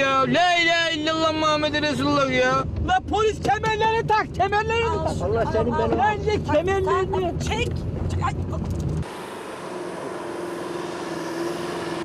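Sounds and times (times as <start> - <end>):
car engine hum: 0.0 - 12.0
road noise: 0.0 - 12.0.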